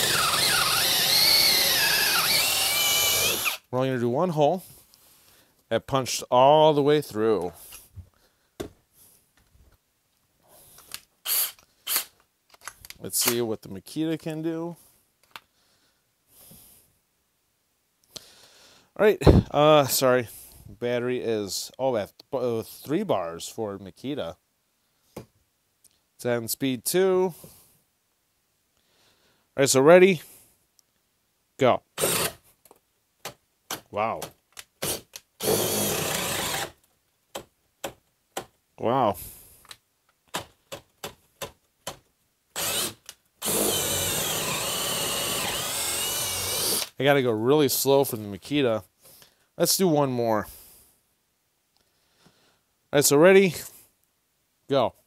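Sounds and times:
drill boring into wood: 0.0s - 3.7s, 11.2s - 12.1s, 32.0s - 32.4s, 34.8s - 36.8s, 42.6s - 47.0s.

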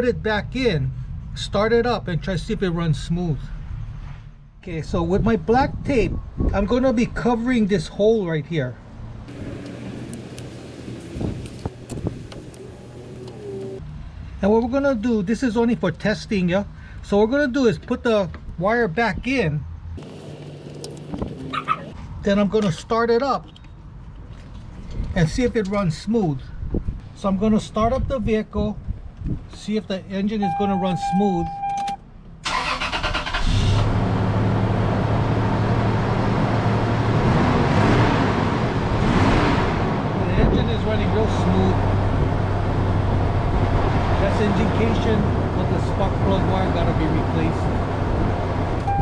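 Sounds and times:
car engine idling: 9.3s - 13.8s
engine starter cranking: 32.4s - 33.9s.

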